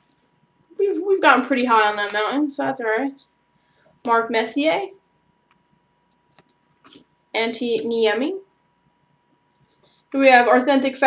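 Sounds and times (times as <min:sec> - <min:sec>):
faint thin hum: 0:00.0 - 0:11.0.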